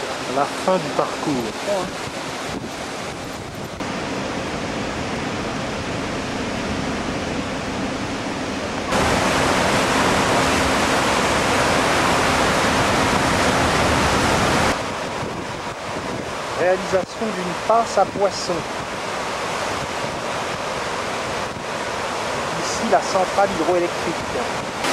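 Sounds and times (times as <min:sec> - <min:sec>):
water rushing through dam gates: 0:00.0 - 0:24.9.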